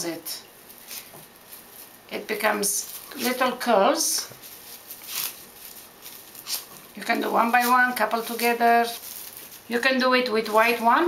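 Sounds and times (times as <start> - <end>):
plastic ribbon rustling: 0.5 - 11.0.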